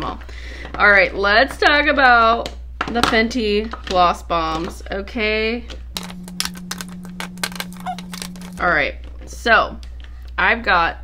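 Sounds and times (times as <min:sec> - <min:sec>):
plastic tubes clicking: 0:06.0 - 0:08.6.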